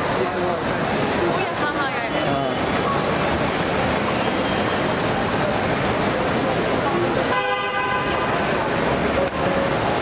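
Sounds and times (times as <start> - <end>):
crowd voices: 0.0 - 10.0
traffic: 0.0 - 10.0
vehicle horn blast: 7.3 - 8.5.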